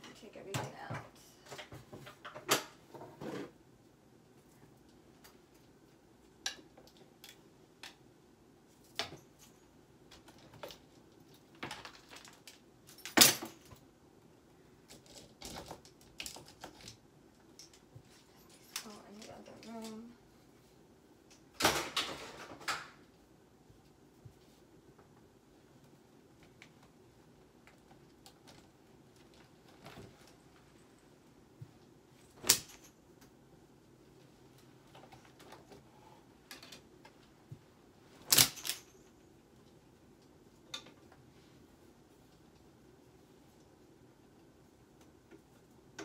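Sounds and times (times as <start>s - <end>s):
clothes hangers clicking and knocking: 38.2s - 39.1s.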